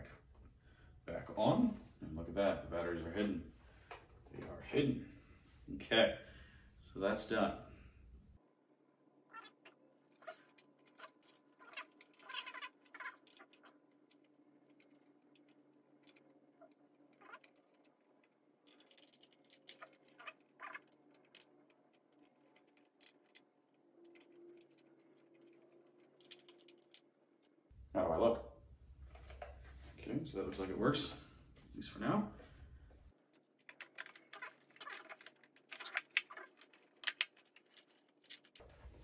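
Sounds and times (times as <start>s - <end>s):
plastic parts clicking and knocking: 17.1s - 27.5s, 33.3s - 38.6s.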